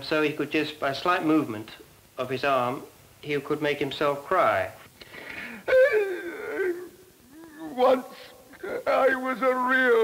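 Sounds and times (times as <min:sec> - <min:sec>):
man sobbing: 0:05.2 - 0:09.2.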